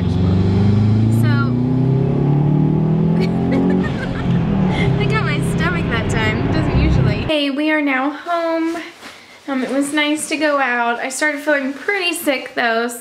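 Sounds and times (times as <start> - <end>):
car engine accelerating: 0.0 - 7.3.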